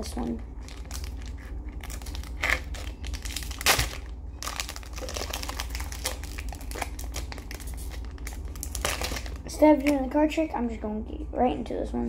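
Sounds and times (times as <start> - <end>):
foil wrapper crinkling: 0.6 - 9.5.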